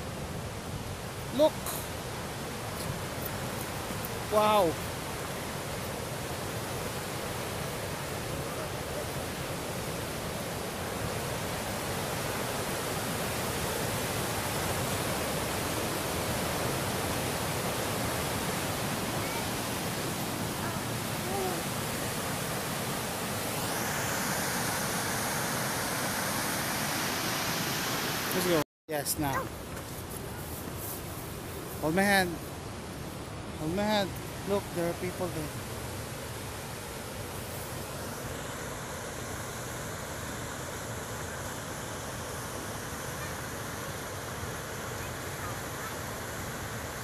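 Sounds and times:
river rushing over rapids: 0.0s - 47.0s.

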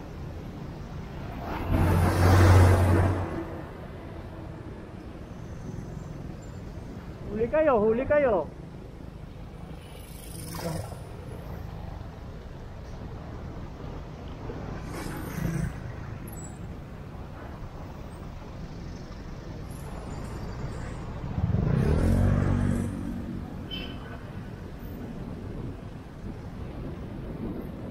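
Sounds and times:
city road traffic: 0.0s - 27.9s
vehicle engine passing close: 21.3s - 23.5s.

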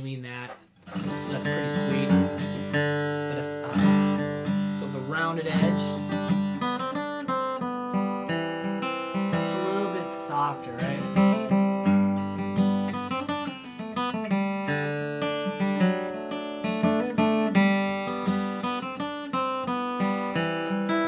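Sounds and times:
acoustic guitar bluegrass picking: 0.0s - 21.0s.

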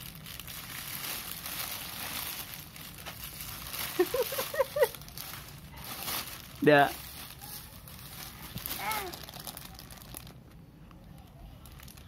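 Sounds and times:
plastic bag crinkling: 0.0s - 10.6s, 11.5s - 12.0s.

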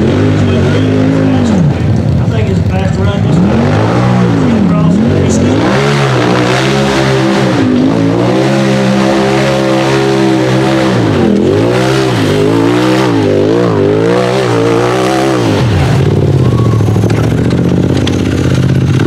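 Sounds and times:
buggy engine revving hard: 0.0s - 19.0s.

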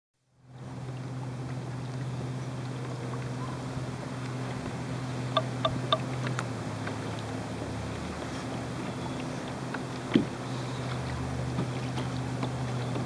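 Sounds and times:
small boat motor humming: 0.2s - 13.0s
water washing: 0.6s - 13.0s.

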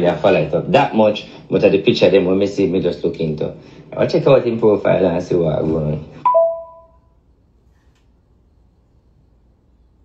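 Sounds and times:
two-note chime: 6.3s - 7.0s.

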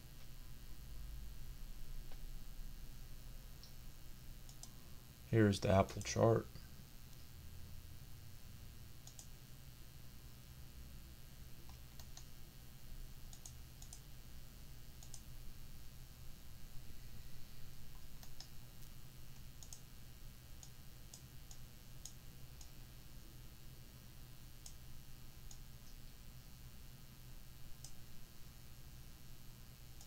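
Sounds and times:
faint low hum: 0.0s - 30.0s
computer mouse clicking: 4.5s - 4.8s, 9.0s - 9.3s, 11.6s - 12.3s, 13.3s - 14.0s, 15.0s - 15.3s, 18.2s - 18.6s, 19.4s - 19.9s, 27.8s - 28.0s.

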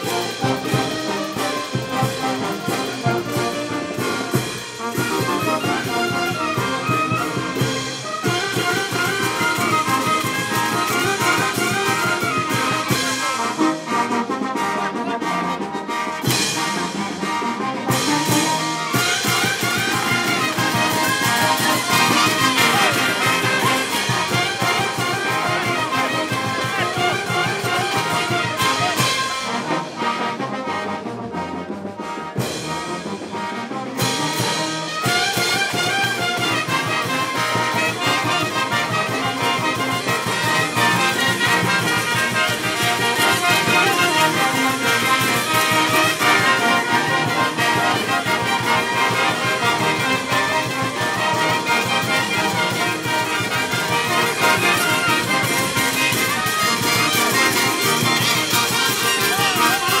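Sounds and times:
brass band playing dance music: 0.0s - 60.0s.

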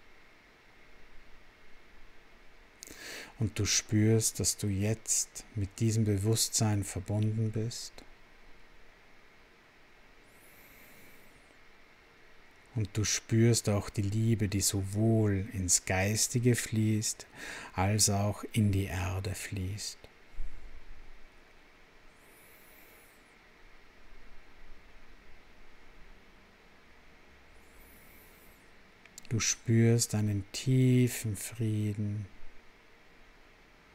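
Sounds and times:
low hiss: 0.0s - 33.9s.

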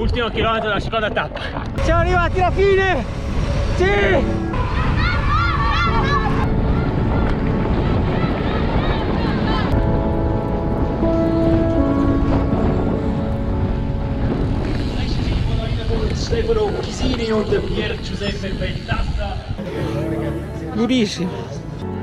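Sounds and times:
wind buffeting microphone: 0.0s - 19.6s.

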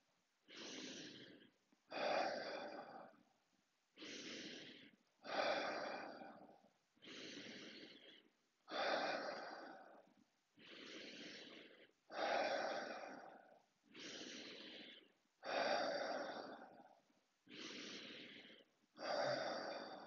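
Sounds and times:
man breathing deeply: 0.0s - 3.3s, 4.0s - 20.0s.

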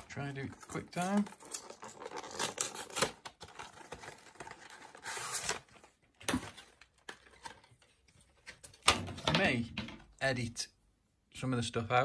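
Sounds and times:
packaging rustling and clicking: 0.0s - 8.9s
packaging tearing: 0.6s - 5.8s.

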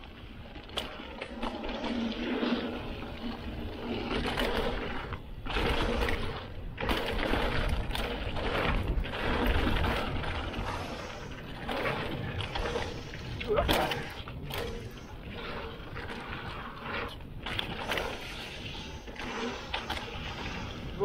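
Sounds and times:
bike rattling over bumps: 0.0s - 21.0s
bike tyres on loose dirt: 0.0s - 21.0s
wind noise on microphone: 0.0s - 21.0s.

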